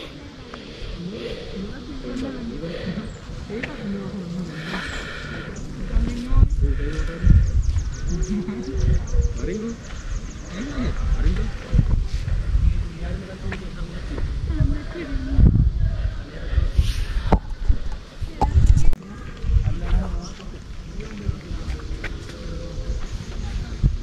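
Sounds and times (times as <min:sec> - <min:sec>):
faint voices talking: 0:00.0 - 0:24.0
wind gusting on microphone: 0:00.0 - 0:24.0.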